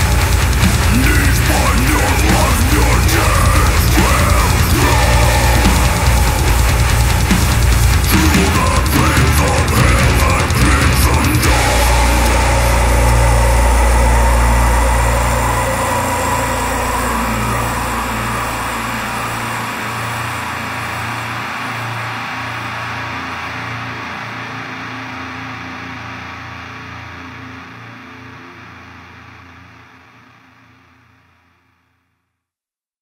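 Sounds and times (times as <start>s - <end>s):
distorted metal guitar chord ringing: 0.0s - 22.9s.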